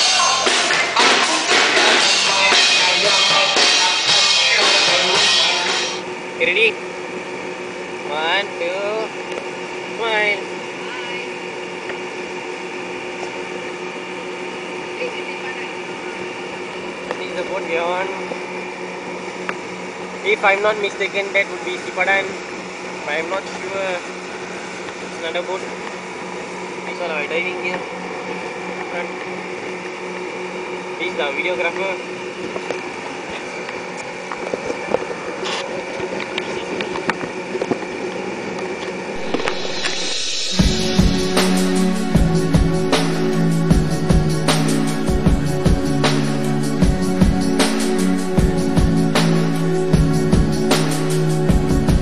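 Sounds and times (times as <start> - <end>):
boat engine running: 0.0 - 52.0
low mechanical drone: 0.0 - 52.0.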